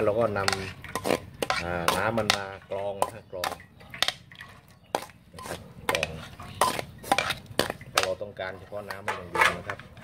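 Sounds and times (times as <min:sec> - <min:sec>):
metal ladle scraping a colander: 0:00.0 - 0:10.0.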